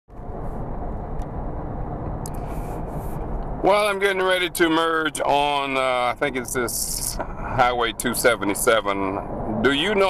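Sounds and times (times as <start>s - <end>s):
tyre and engine rumble in car: 0.1s - 10.0s.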